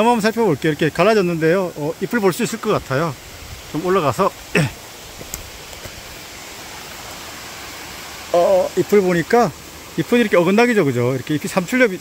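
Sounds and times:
mountain stream rushing: 0.0s - 12.0s.

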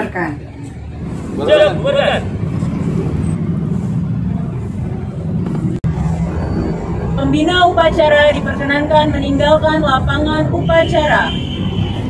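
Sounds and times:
low outdoor rumble: 0.0s - 10.5s, 11.1s - 12.0s.

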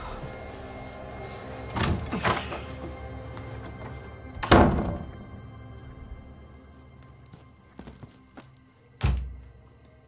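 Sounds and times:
low background music: 0.0s - 10.0s.

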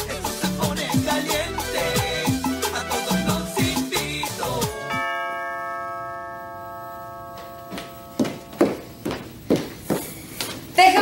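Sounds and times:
salsa music: 0.0s - 5.4s
doorbell chime: 4.8s - 8.9s.

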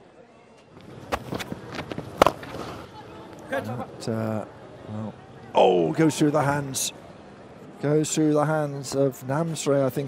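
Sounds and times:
faint outdoor ambience: 0.0s - 10.0s.

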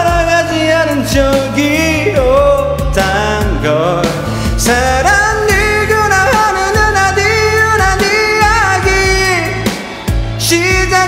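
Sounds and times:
karaoke backing track: 0.0s - 11.0s
man singing pop ballad: 0.0s - 11.0s.

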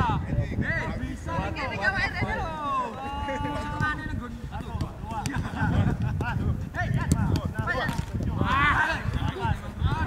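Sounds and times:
ball being kicked: 4.6s - 9.8s
players shouting: 6.6s - 10.0s.

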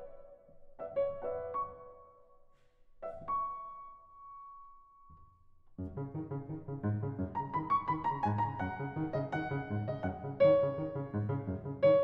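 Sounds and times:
grand piano played softly: 0.0s - 12.0s.

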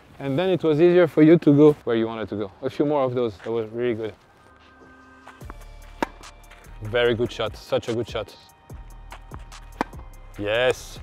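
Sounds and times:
background music with bass line: 5.2s - 11.0s
tennis racket hitting ball: 5.4s - 6.8s, 9.3s - 10.0s.

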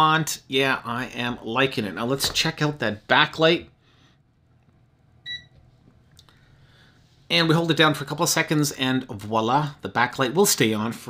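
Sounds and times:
multimeter short high beep: 5.3s - 5.5s.

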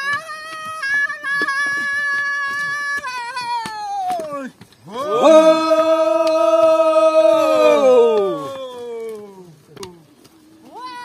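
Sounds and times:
voices chanting: 4.8s - 9.5s.

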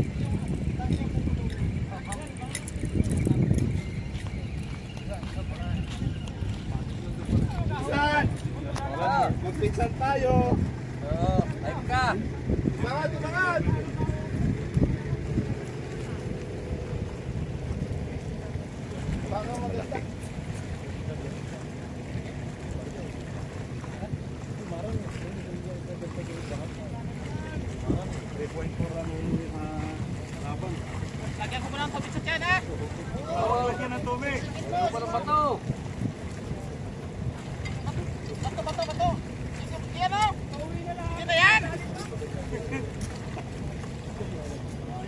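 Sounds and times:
wind rumbling on microphone: 0.0s - 45.0s.

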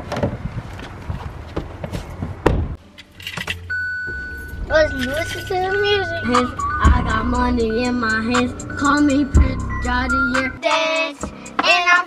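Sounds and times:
car door and seat knocks: 1.6s - 2.8s
heavy thump: 1.6s - 2.8s
keys jangling: 3.0s - 3.6s, 4.4s - 5.6s
steady high tone: 3.6s - 11.0s.

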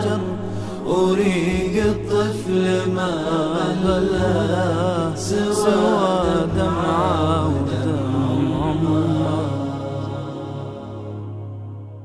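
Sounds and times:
man singing: 0.0s - 11.0s
low drone: 0.0s - 12.0s.

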